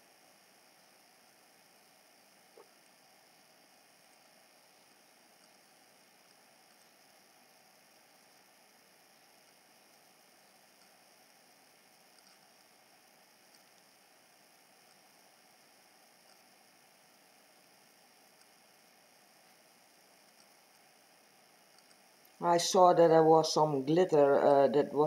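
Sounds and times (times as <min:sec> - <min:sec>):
very faint ticks: 0:10.7 - 0:11.0, 0:12.1 - 0:12.8, 0:16.2 - 0:16.5, 0:18.3 - 0:18.6, 0:21.7 - 0:22.4.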